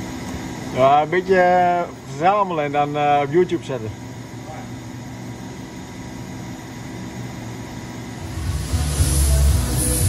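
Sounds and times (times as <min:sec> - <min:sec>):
faint machine hum: 0:00.0 - 0:10.0
coolant spraying hiss: 0:08.2 - 0:10.0.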